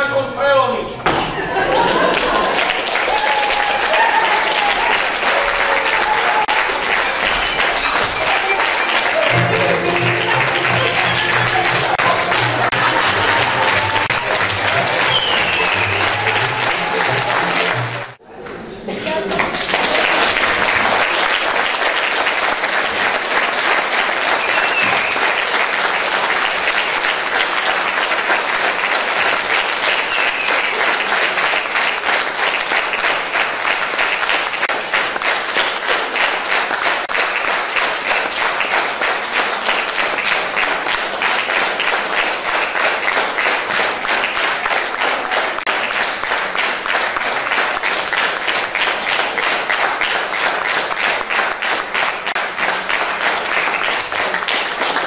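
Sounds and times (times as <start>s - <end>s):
audience applauding: 1.4s - 55.0s.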